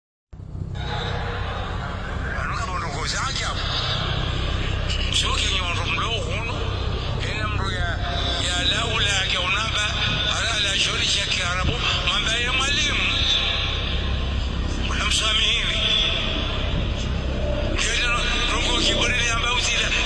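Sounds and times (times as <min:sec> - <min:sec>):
steady low rumble: 0:00.4 - 0:20.0.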